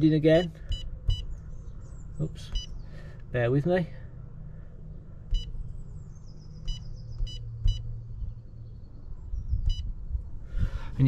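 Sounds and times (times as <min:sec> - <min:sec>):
steady low hum: 0:00.0 - 0:11.0
short electronic beeps: 0:00.7 - 0:01.3, 0:02.5 - 0:02.8, 0:06.6 - 0:07.9, 0:09.7 - 0:09.9.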